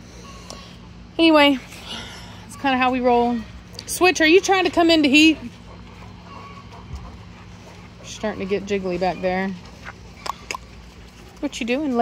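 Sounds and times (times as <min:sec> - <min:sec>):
faint animal sounds: 0:00.0 - 0:01.2, 0:01.9 - 0:12.0.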